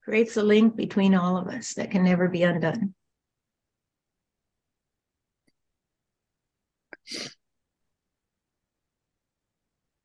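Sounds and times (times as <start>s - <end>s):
burst of breath noise: 7.0s - 7.4s.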